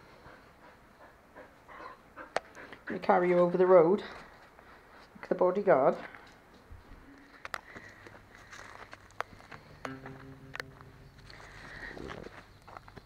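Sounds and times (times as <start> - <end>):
quiet footsteps: 4.0 - 13.0
faint low hum: 6.8 - 13.0.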